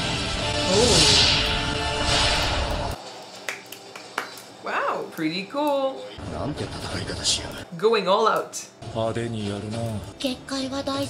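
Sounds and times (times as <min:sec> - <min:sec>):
rushing fire sound effect: 0:00.0 - 0:03.0
soundtrack music: 0:00.0 - 0:03.0
woman speaking: 0:04.6 - 0:06.1, 0:07.7 - 0:08.7.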